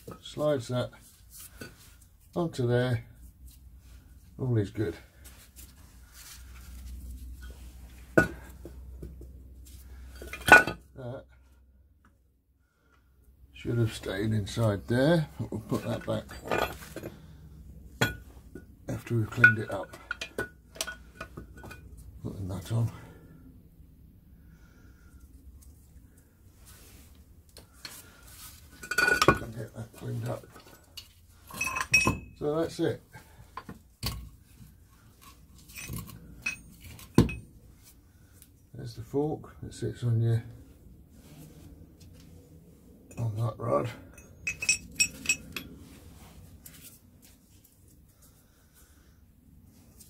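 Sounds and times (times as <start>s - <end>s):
low steady hum: 0.0s - 50.0s
steel parts clinking: 15.7s - 17.2s, 19.3s - 22.0s, 28.7s - 32.4s, 35.2s - 37.5s, 44.0s - 45.8s.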